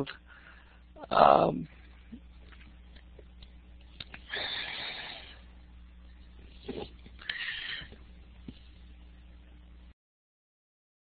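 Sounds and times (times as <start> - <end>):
low steady hum: 0.0 - 10.0
person breathing: 0.2 - 1.0, 4.3 - 5.5, 7.2 - 8.0.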